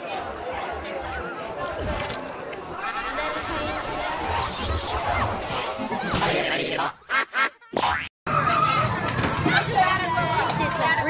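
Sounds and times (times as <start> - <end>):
children chattering and shouting: 0.0 - 7.0, 8.3 - 11.0.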